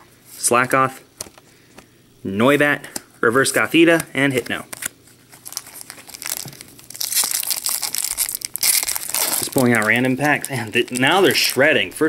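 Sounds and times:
foil wrapper crinkling and tearing: 0:04.7 - 0:11.8.

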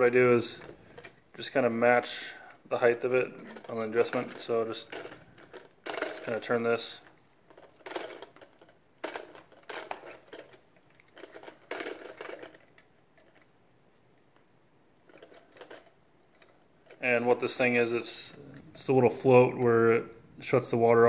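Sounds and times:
plastic clicking and scraping: 0:00.4 - 0:01.2, 0:02.5 - 0:13.6, 0:15.0 - 0:21.0.

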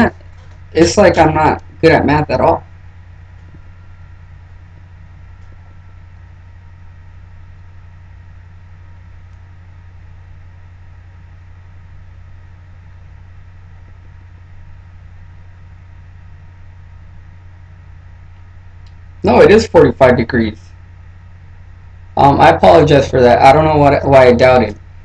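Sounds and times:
low hum with faint hiss: 0:00.0 - 0:25.0.

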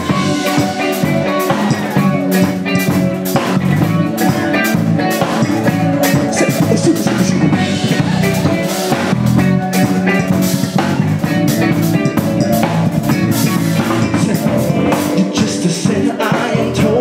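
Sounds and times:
drum kit beat: 0:00.0 - 0:17.0
electric bass guitar: 0:00.0 - 0:17.0.

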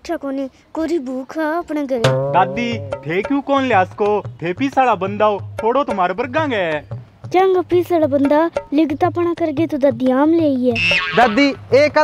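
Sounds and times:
person speaking: 0:02.0 - 0:03.7.

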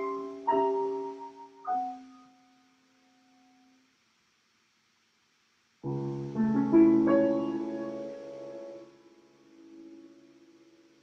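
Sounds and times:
piano chord ringing: 0:00.0 - 0:02.6, 0:05.8 - 0:11.0.

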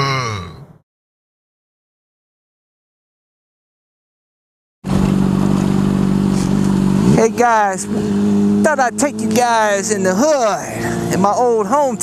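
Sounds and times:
motorcycle engine cruising: 0:04.8 - 0:12.0.

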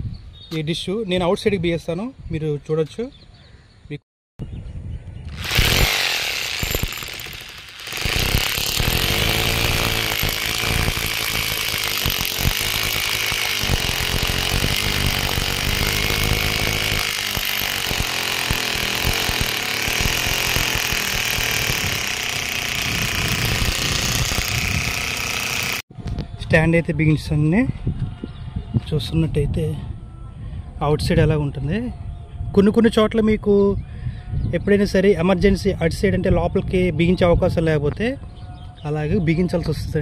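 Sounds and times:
hammer drill boring into concrete: 0:05.3 - 0:25.8.

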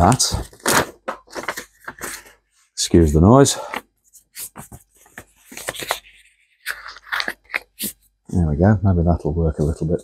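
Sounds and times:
paper crinkling and scraping: 0:00.0 - 0:08.1.

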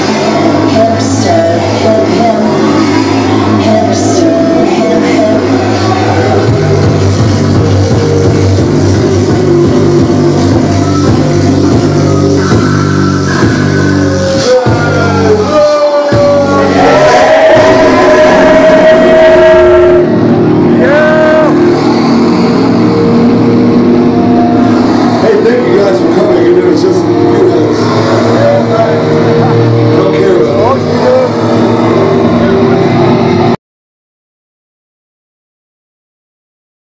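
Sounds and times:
loud distorted droning noise: 0:00.0 - 0:33.6
noise-rap music: 0:00.0 - 0:33.6
pulsing bass line: 0:00.0 - 0:33.6.

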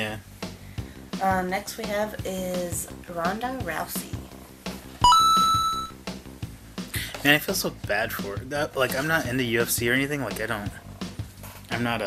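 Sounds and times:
soft background music: 0:00.0 - 0:12.0
two-note chime: 0:05.0 - 0:06.0.

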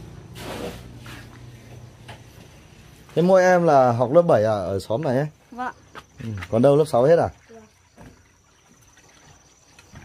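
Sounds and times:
water trickling into pond: 0:01.2 - 0:10.0.

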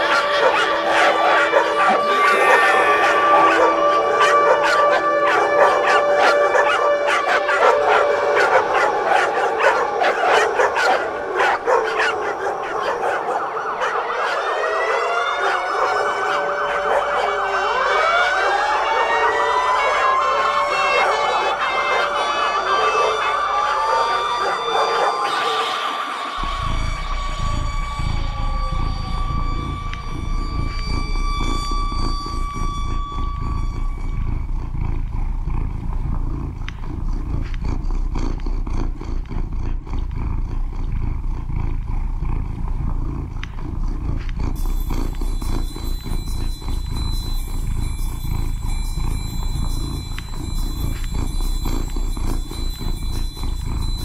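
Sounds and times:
siren-like sweeping tones: 0:00.0 - 0:36.4, 0:44.4 - 0:54.0
long high tones: 0:00.0 - 0:36.8, 0:44.4 - 0:54.0
low rumble: 0:26.4 - 0:54.0.

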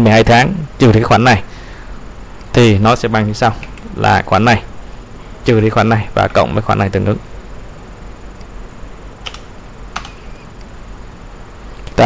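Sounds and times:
low steady hum: 0:00.0 - 0:12.0
keyboard key clicks: 0:09.2 - 0:10.2.

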